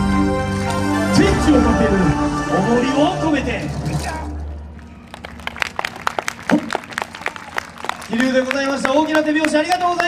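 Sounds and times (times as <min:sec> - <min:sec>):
audience clapping: 0:04.8 - 0:10.0.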